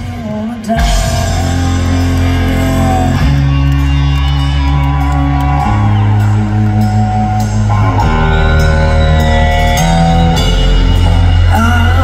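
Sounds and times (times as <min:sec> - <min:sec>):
distorted electric guitar chords: 0:00.0 - 0:12.0
drums and cymbals: 0:00.0 - 0:12.0.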